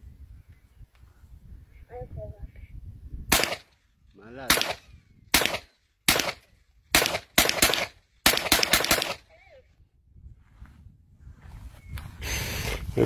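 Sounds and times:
carbine gunshots: 3.3 - 3.7, 4.4 - 9.3.

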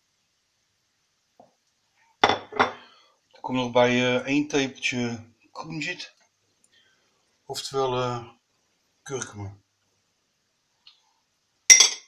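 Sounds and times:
kitchenware clinking: 2.2 - 2.8, 11.7 - 12.0.

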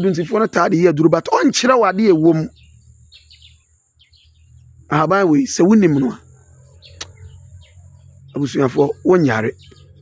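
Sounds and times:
man's voice: 0.0 - 2.6, 4.9 - 6.2, 8.4 - 9.6
birds chirping faintly: 0.0 - 10.0.

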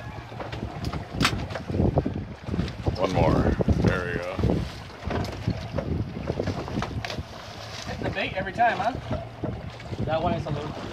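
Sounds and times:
low rumble of boat: 0.0 - 10.9
wind buffeting microphone: 0.0 - 10.9.

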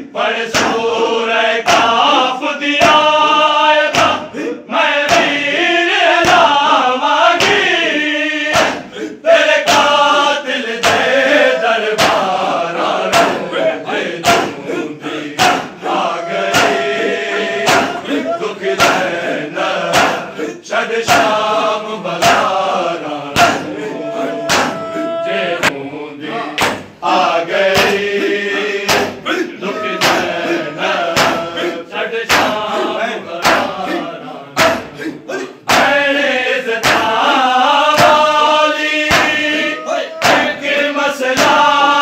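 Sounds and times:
men chanting together: 0.0 - 42.0
hands slapping chests: 0.5 - 0.8, 3.9 - 4.2, 5.0 - 5.4, 6.2 - 6.5, 8.5 - 8.9, 9.6 - 10.0, 10.8 - 11.2, 11.9 - 12.4, 13.1 - 13.5, 14.2 - 14.6, 15.4 - 15.8, 16.5 - 16.9, 17.6 - 19.2, 19.9 - 20.3, 23.4 - 23.8, 24.5 - 24.9, 25.6 - 25.8, 26.6 - 27.0, 27.7 - 28.1, 28.8 - 29.3, 30.0 - 30.4, 31.0 - 31.6, 32.3 - 32.6, 33.4 - 33.8, 34.6 - 35.0, 35.7 - 36.0, 36.8 - 37.2, 39.0 - 40.6, 41.3 - 41.7.

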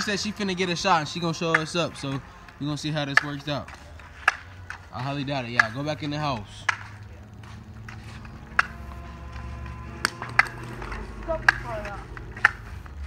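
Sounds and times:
faint voices: 0.0 - 13.0
low steady rumble: 3.9 - 13.0
sharp clicks and taps: 6.6 - 13.0.

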